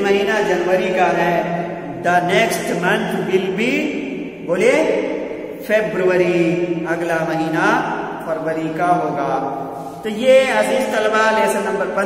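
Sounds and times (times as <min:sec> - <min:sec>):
man speaking slowly: 0:00.0 - 0:12.0.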